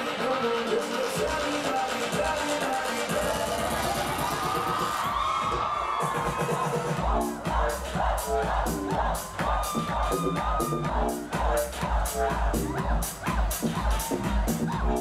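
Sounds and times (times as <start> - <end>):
heavy bass drum beat: 0.0 - 15.0.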